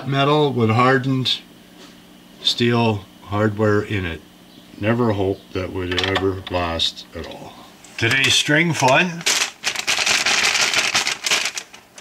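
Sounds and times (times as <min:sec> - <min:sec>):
paper packet crinkling: 0:08.0 - 0:12.0.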